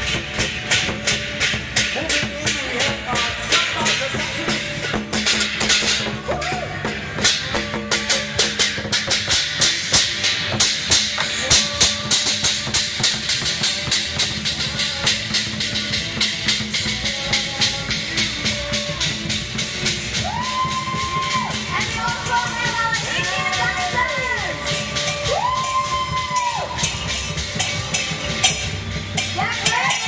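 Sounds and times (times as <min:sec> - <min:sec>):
parade music backing: 0:00.0 - 0:30.0
rapid sharp drum strikes: 0:00.0 - 0:30.0.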